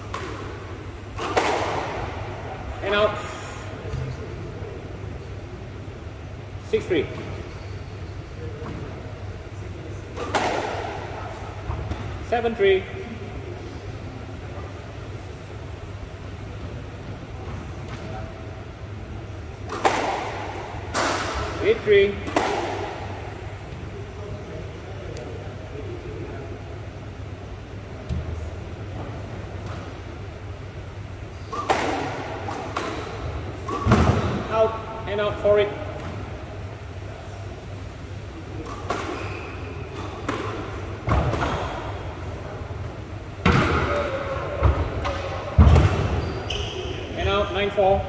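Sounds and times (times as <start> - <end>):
squash ball hits: 1.2 - 2.2, 10.2 - 11.0, 19.7 - 21.6, 22.2 - 23.1, 31.5 - 34.6, 43.4 - 46.2.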